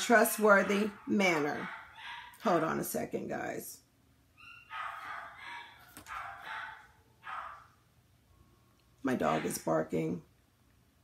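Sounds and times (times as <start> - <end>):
dog barking: 0.5 - 2.4, 4.4 - 7.8.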